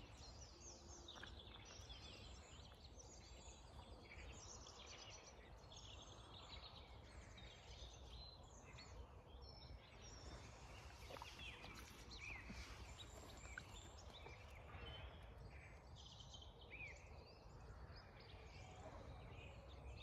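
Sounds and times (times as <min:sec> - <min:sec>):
songbirds singing: 0:00.0 - 0:20.0.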